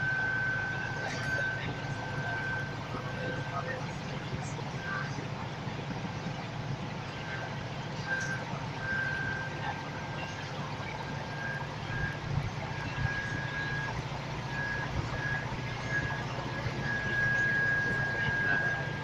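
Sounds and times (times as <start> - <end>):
bus diesel engine drone: 0.0 - 19.0
road noise: 0.0 - 19.0
high-pitched whine: 7.1 - 19.0.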